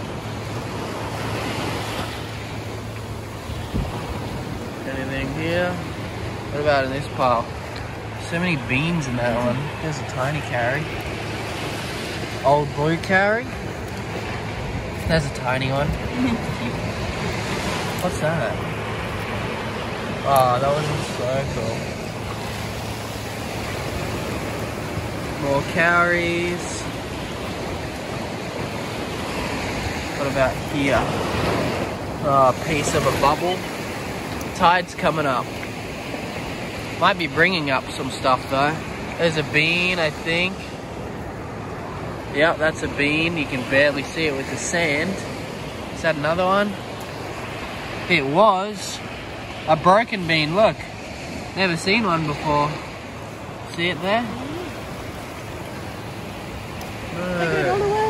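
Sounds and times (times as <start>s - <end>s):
ocean surf washing onto beach: 0.0s - 58.0s.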